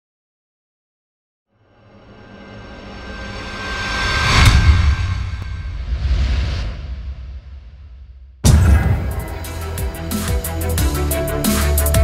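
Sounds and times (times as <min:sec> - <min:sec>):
whoosh: 0:01.8 - 0:09.9
riser building to sharp hit: 0:01.8 - 0:10.5.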